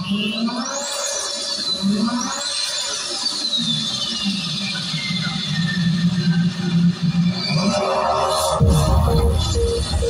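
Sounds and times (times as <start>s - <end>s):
high synth tone sliding down: 7.7s - 10.0s
wavering low drone: 8.2s - 10.0s.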